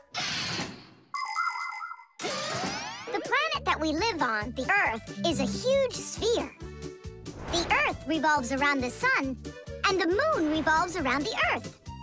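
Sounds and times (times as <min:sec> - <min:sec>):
rushing whoosh: 0:07.3 - 0:08.2.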